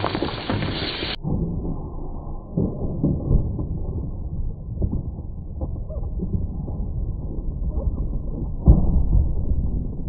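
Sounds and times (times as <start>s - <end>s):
soda spraying: 0.0s - 1.2s.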